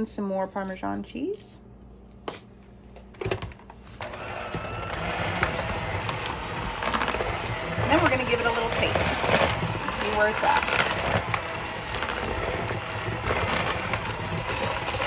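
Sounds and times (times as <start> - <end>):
electric hand mixer running: 4.0 - 15.0.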